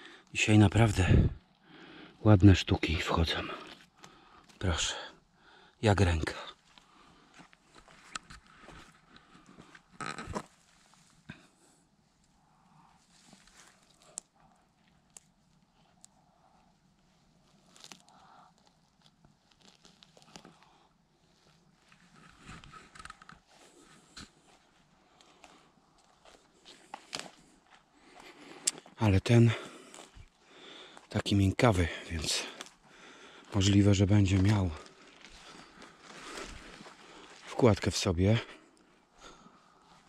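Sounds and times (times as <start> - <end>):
rustling of grass and leaf litter: 17.3 - 20.6, 33.5 - 37.7.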